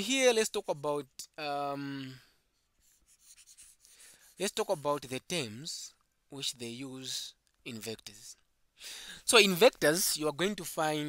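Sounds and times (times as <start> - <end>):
stylus scratching on tablet screen: 2.6 - 4.8.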